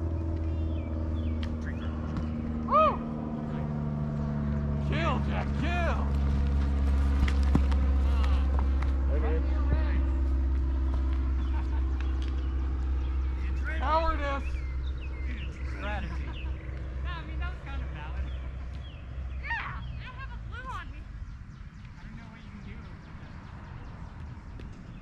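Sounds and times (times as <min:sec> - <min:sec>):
steady low drone: 0:00.0 - 0:25.0
voices calling out: 0:00.0 - 0:25.0.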